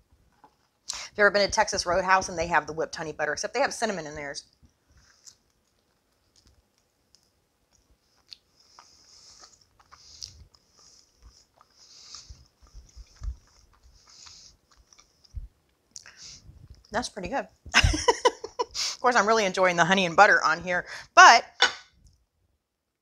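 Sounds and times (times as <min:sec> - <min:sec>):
person chewing: 0:04.9 - 0:16.9.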